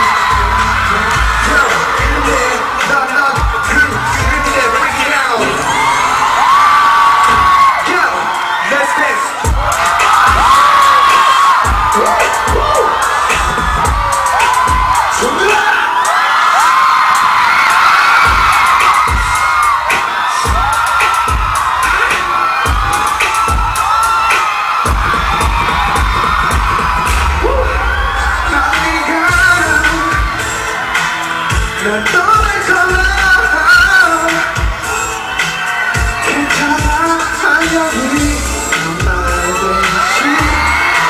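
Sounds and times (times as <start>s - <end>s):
deep thudding bass beat: 0.0s - 4.8s, 9.5s - 11.0s, 11.6s - 15.3s, 18.3s - 19.7s, 24.9s - 30.7s, 31.5s - 35.0s, 36.0s - 40.9s
crowd screaming: 0.0s - 41.0s
live pop music: 0.0s - 41.0s.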